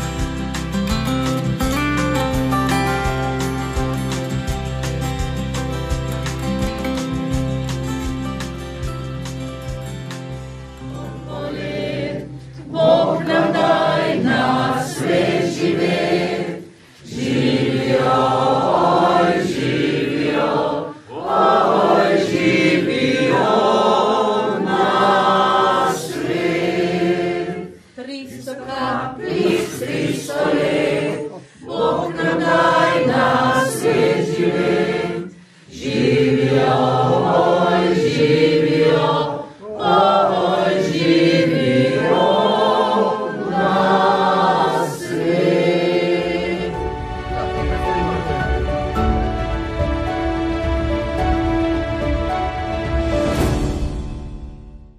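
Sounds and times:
choir singing: 0:10.8 - 0:54.2.

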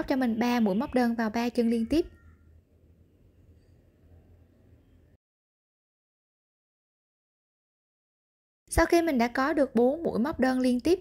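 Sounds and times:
woman's voice: 0:00.0 - 0:02.1, 0:08.7 - 0:11.0.

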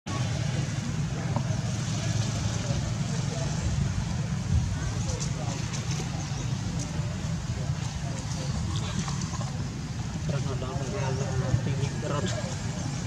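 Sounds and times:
faint background voices: 0:00.1 - 0:13.0.

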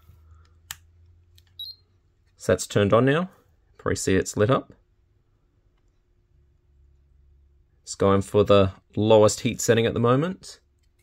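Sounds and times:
high-pitched beep: 0:01.6 - 0:01.8.

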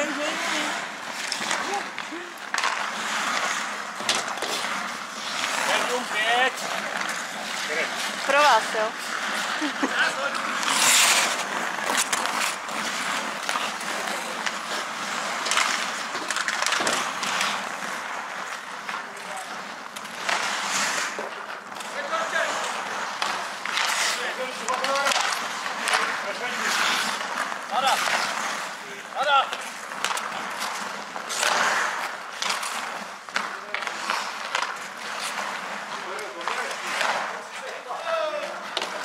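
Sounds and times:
skate blades scraping ice: 0:00.0 - 0:39.0.

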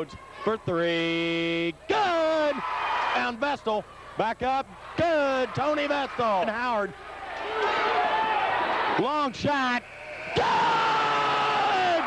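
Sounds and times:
crowd yelling and cheering: 0:00.0 - 0:12.0.

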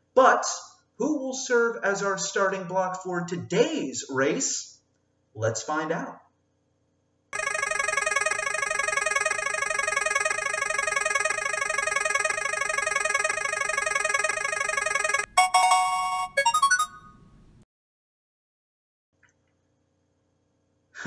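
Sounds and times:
fast ringing electronic jingle: 0:07.4 - 0:17.2.

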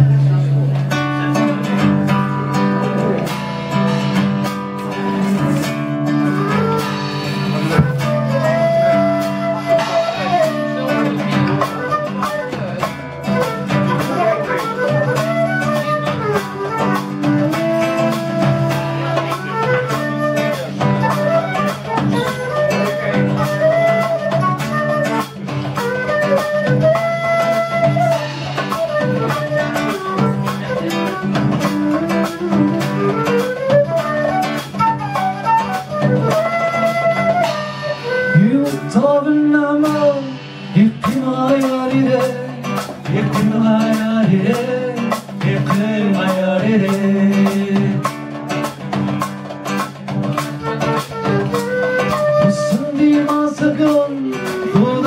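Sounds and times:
acoustic guitar: 0:00.0 - 0:55.0
hand percussion: 0:00.0 - 0:55.0
sliding lead melody: 0:00.0 - 0:55.0.

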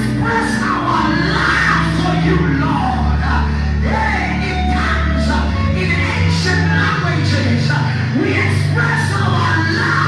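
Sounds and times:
bass: 0:00.0 - 0:10.0.

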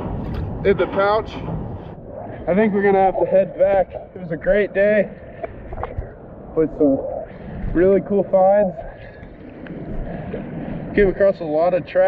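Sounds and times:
wind on microphone: 0:00.0 - 0:12.0.

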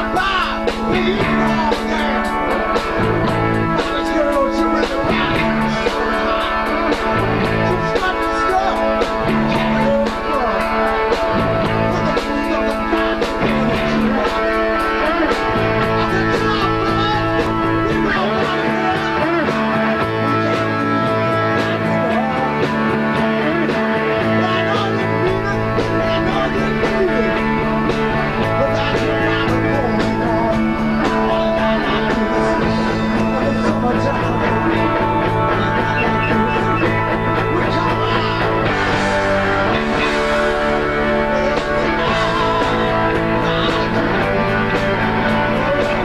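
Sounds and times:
bass guitar: 0:00.0 - 0:46.0
drums: 0:00.0 - 0:46.0
electric guitar: 0:00.0 - 0:46.0.

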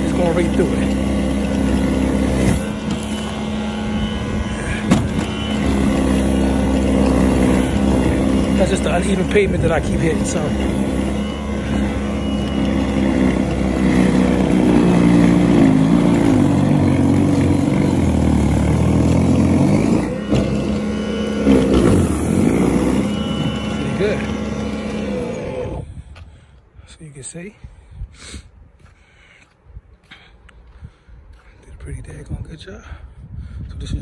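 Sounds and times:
electric snowblower running: 0:00.0 - 0:26.0.

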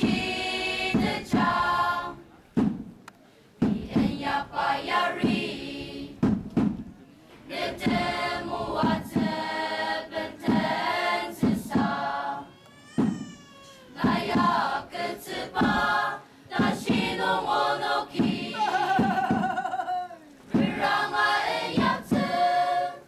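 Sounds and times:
choir singing: 0:00.0 - 0:02.2, 0:03.7 - 0:06.2, 0:07.4 - 0:12.5, 0:14.0 - 0:19.4, 0:20.5 - 0:23.0.

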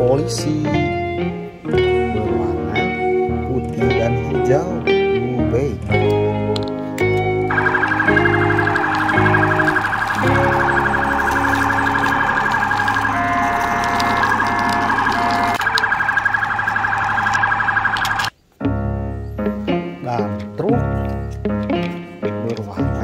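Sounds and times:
light background music: 0:00.0 - 0:14.7, 0:18.7 - 0:23.0
stepped electronic beeping: 0:07.5 - 0:18.3
toy police siren warbling: 0:07.5 - 0:18.3.

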